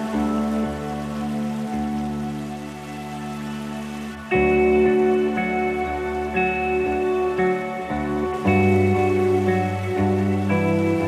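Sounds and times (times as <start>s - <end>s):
soft sustained chords: 0.0s - 11.0s.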